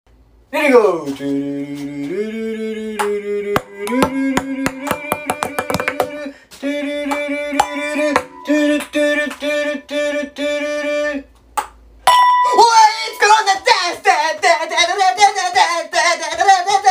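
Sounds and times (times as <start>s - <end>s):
person singing long notes: 1.2s - 11.3s
ping pong balls bouncing: 3.6s - 6.2s, 7.6s - 8.9s.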